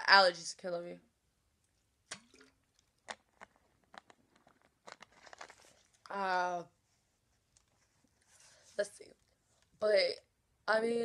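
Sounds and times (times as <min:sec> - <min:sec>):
plastic water bottle crinkling: 0:02.1 - 0:06.1.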